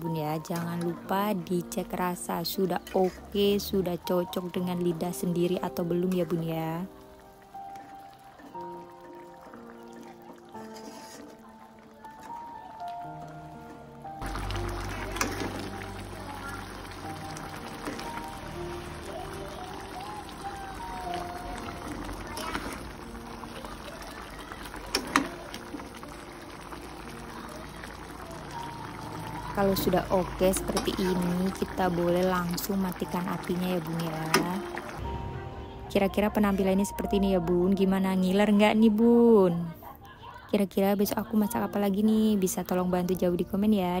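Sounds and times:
background music: 0.0 - 44.0
broth simmering in a wok: 0.1 - 38.9.

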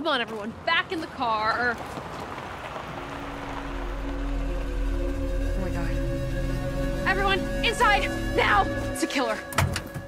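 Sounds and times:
deep rumble: 2.8 - 9.2
low suspense music drone: 2.9 - 10.0.

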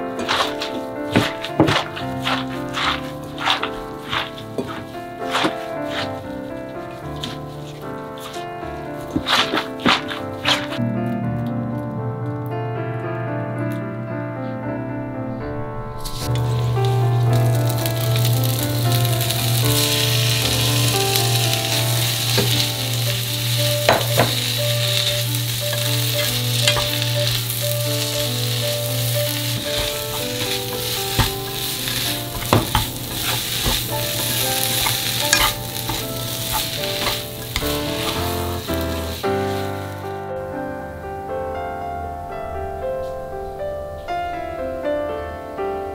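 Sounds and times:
greens sizzling in a frying pan: 0.0 - 10.8, 16.0 - 40.2
low hum: 10.8 - 33.2.

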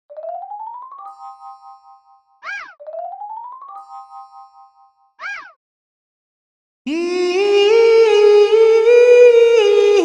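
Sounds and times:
ringing chime chord: 0.2 - 5.2.

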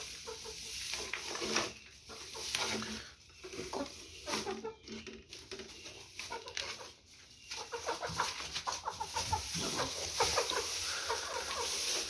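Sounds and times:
hen clucking: 0.0 - 12.0
straw rustling: 0.0 - 12.0.

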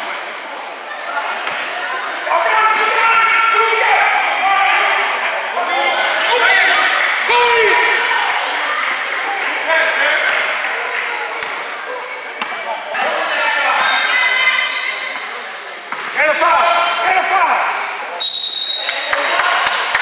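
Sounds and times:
shouts and chatter: 0.0 - 20.0.

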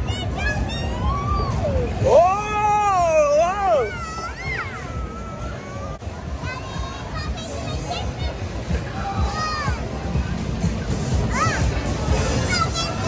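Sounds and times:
fairground music: 0.0 - 13.0.

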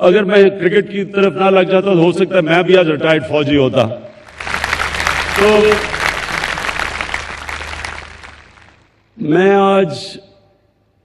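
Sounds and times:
audience applause: 4.2 - 9.0.

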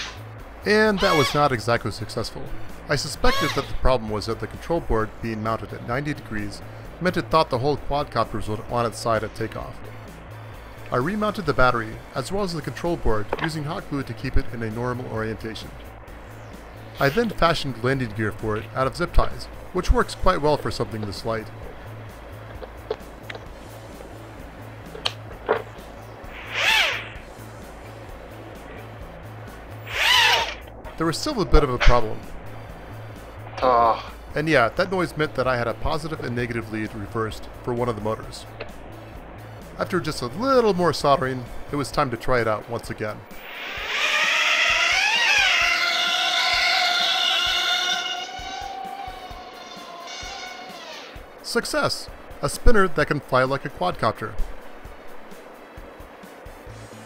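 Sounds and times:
background music: 0.0 - 57.0
tiny drone motors whining: 26.3 - 27.2, 29.8 - 30.7, 43.4 - 51.2.

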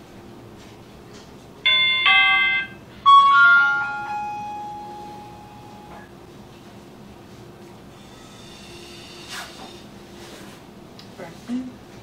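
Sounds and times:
electronic chime notes: 1.7 - 6.0.

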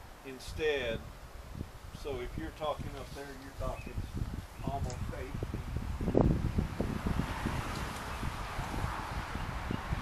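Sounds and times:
leaves rustling: 0.0 - 9.4
wind gusting on microphone: 0.0 - 10.0.

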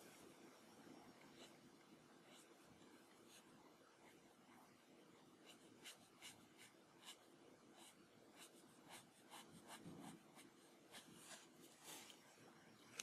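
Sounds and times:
marker nib scratching on paper: 5.4 - 11.6.

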